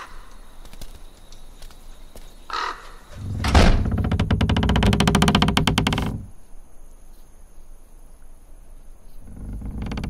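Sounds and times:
door hinges creaking: 3.1s - 6.4s, 9.2s - 10.0s
door bolt scraping: 3.2s - 6.2s.

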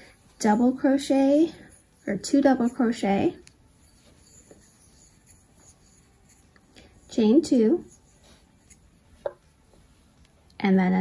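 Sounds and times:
yarn scratching on crochet hook: 0.4s - 9.6s.

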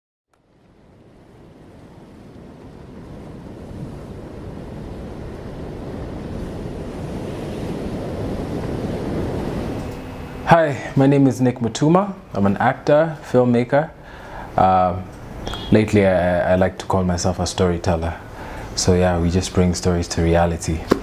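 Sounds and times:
ocean waves: 0.5s - 21.0s.

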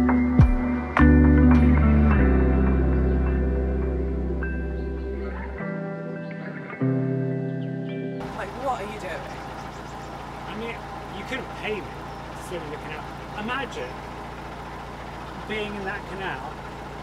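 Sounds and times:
diesel engine droning: 0.0s - 17.0s.

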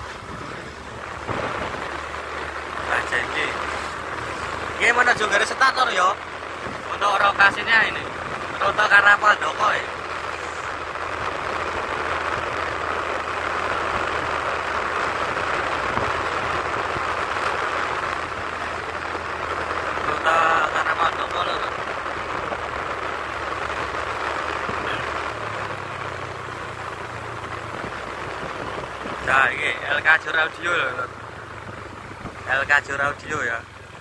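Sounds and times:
car road and engine noise: 0.0s - 34.0s.

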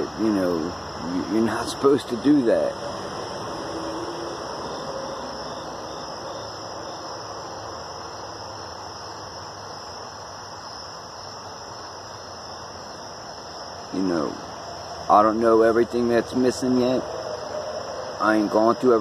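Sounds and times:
background hiss: 0.0s - 19.0s
crickets shrilling: 0.0s - 19.0s.

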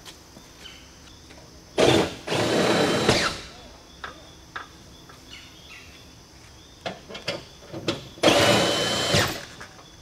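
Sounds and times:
power drill running: 1.8s - 3.4s, 8.2s - 9.5s.

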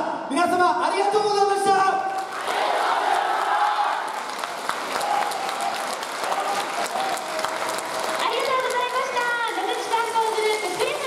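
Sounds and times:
audience applauding: 2.2s - 11.0s.

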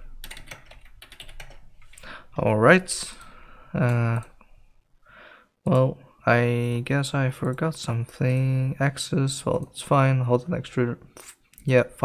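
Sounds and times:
computer keyboard typing: 0.1s - 2.1s.

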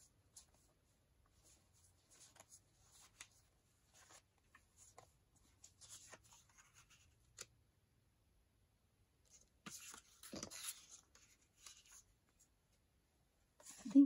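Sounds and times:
paper cards rustling: 1.4s - 7.5s, 9.3s - 12.5s.

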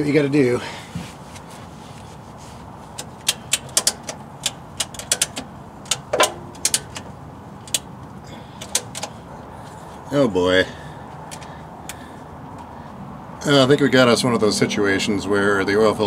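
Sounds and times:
ratchet clicking: 3.0s - 7.9s.

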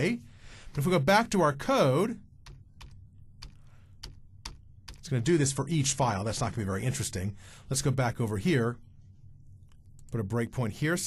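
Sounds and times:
low steady hum: 0.0s - 11.0s
keyboard and mouse clicks: 2.4s - 5.2s.

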